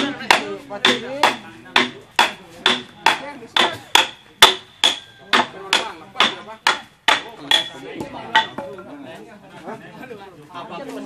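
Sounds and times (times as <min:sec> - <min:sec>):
hammer striking wood: 0:00.0 - 0:08.8.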